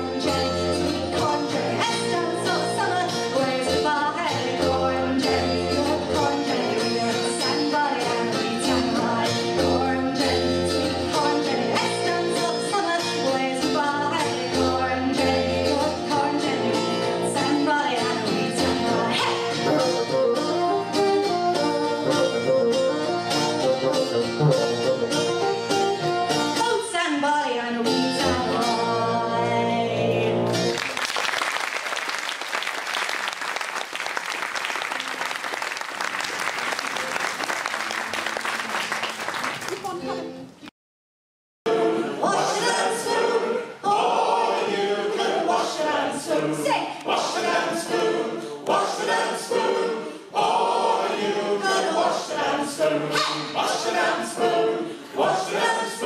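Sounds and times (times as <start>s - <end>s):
bassoon and plucked strings: 0.0s - 26.8s, 27.8s - 30.7s
audience applauding: 30.5s - 40.2s.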